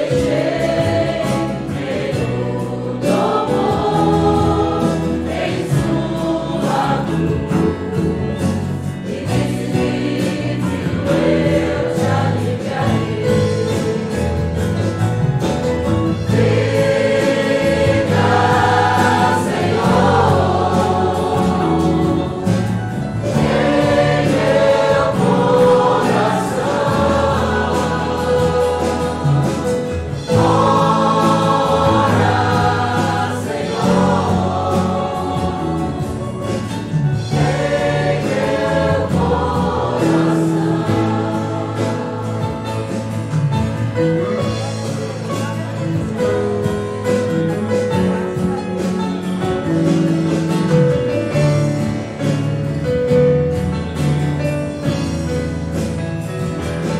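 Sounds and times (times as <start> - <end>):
acoustic guitars: 0.0 - 56.9
choir singing a hymn: 0.0 - 56.9
drums: 0.0 - 56.9
electric keyboard: 0.0 - 56.9.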